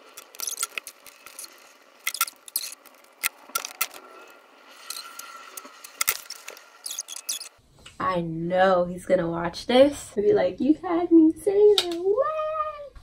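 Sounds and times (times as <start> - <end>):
sharp crackles: 0.0 - 7.6.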